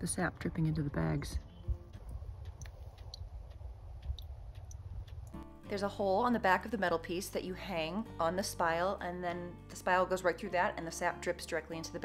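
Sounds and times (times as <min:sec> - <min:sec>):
low rumble: 0:00.0 - 0:05.4.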